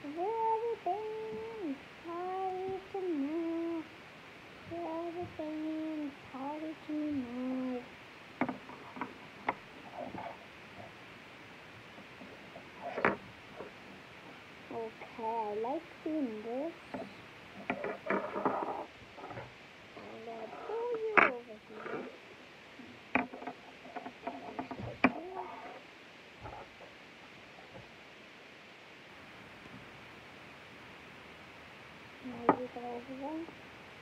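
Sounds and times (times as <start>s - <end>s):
girl humming: 0.0s - 3.9s, 4.7s - 7.9s, 14.7s - 17.0s, 20.0s - 21.8s.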